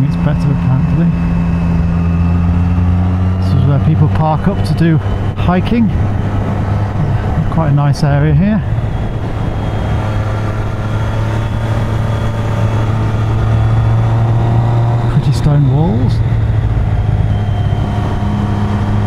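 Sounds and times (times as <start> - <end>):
motorcycle engine cruising: 0.0 - 19.0
wind noise: 0.0 - 19.0.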